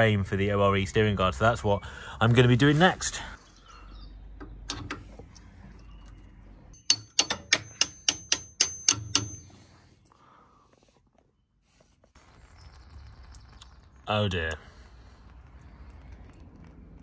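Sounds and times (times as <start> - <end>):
hammer tapping on metal: 6.8 - 9.6.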